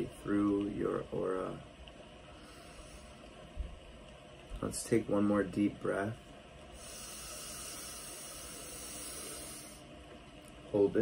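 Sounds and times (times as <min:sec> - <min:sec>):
deep breath through nose: 0:02.3 - 0:03.3, 0:06.8 - 0:09.9.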